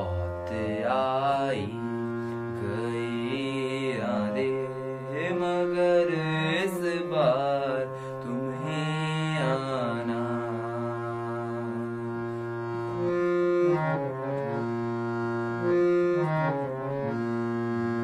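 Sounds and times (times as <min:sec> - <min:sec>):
young man singing: 0:00.0 - 0:12.6
harmonium sustained notes: 0:00.0 - 0:18.0.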